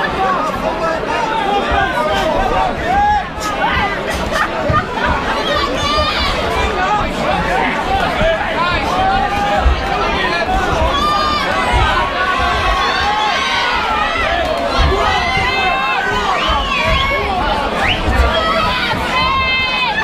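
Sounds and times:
crowd shouting: 0.0s - 20.0s
dull low thumps: 3.7s - 19.7s.

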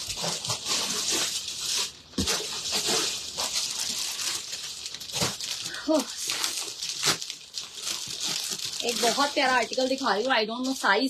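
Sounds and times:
plastic packaging rustling: 0.0s - 11.0s.

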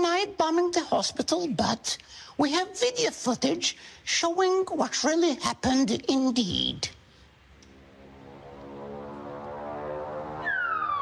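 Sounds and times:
steady pitched drone: 7.6s - 11.0s
falling bomb whistle: 8.7s - 11.0s.

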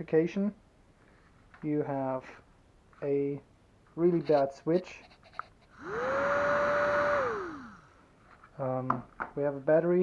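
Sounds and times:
small electric motor whining: 5.7s - 8.0s
fan air rushing: 5.7s - 8.1s.

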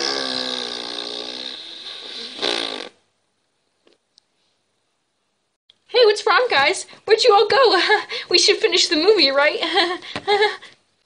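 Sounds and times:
fart noise: 0.0s - 3.1s.

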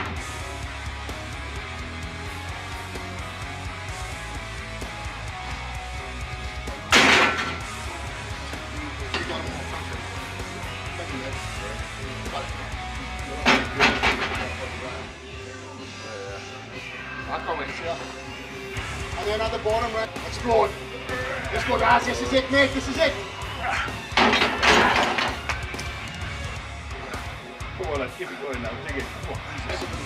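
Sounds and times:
rock music with steady beat: 0.0s - 30.0s.

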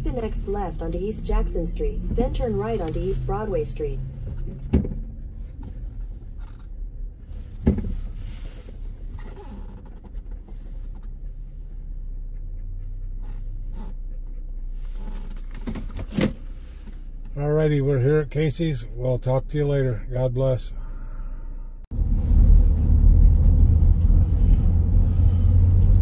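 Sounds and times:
car engine running low: 0.0s - 26.0s.

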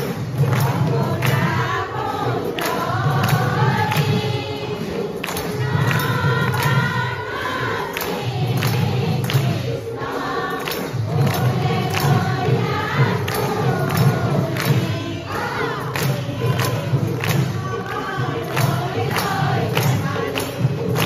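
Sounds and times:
hands clapping on a beat: 0.0s - 21.0s
women singing together: 0.0s - 21.0s.

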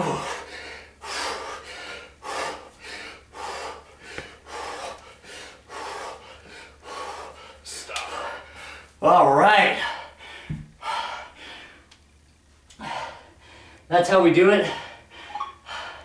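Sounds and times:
man breathing hard: 0.0s - 9.0s, 9.7s - 11.9s, 12.7s - 13.9s, 14.6s - 16.0s.

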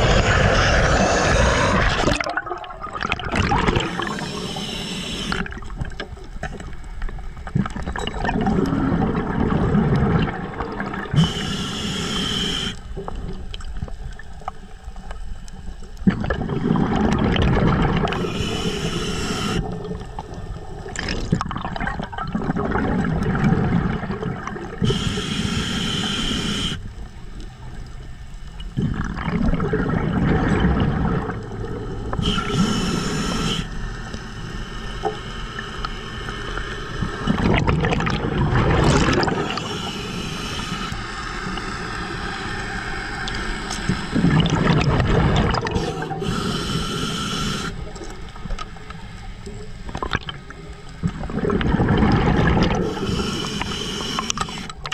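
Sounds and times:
bubbling rumbling exhale: 0.0s - 5.8s, 7.5s - 13.4s, 16.0s - 26.8s, 28.6s - 48.1s, 50.0s - 54.9s
regulator hissing inhale: 3.8s - 5.5s, 11.1s - 12.9s, 18.1s - 19.8s, 24.8s - 26.9s, 32.1s - 36.8s, 39.4s - 44.2s, 45.7s - 48.0s, 52.8s - 54.8s.

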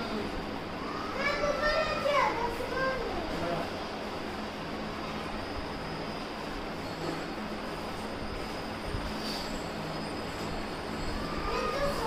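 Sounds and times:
young child's high-pitched voice: 0.8s - 3.5s, 11.2s - 12.0s.

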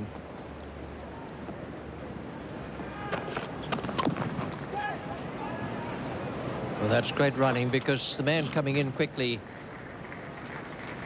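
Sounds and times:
crowd ambience: 0.0s - 11.0s.

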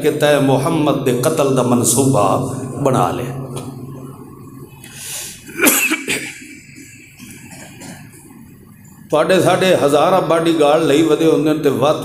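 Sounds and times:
man coughing: 5.5s - 8.2s.

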